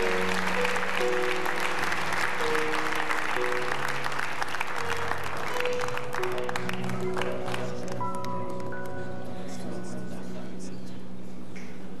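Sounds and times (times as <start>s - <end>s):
held keyboard chord: 0.0s - 10.7s.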